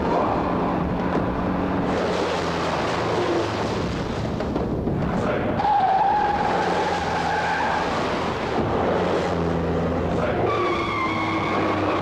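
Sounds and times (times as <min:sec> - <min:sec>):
car tyres squealing: 0:00.0 - 0:04.4, 0:05.0 - 0:12.0
car engines running: 0:00.0 - 0:12.0.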